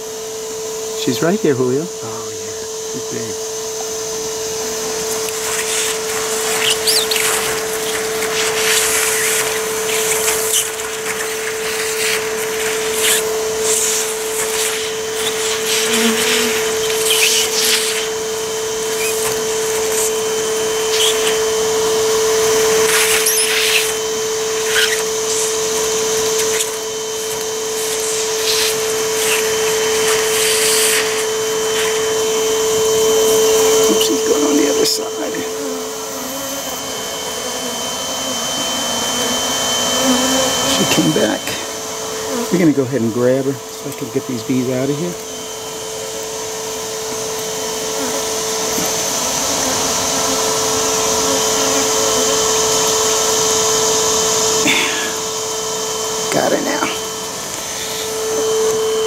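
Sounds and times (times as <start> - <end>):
vacuum motor whine: 0.0 - 59.0
air rushing at nozzle: 5.2 - 35.4.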